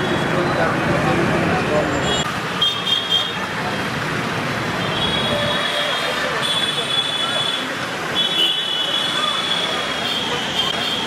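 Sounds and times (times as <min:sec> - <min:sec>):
engine and road noise: 0:00.0 - 0:11.0
vehicle horns: 0:04.8 - 0:11.0.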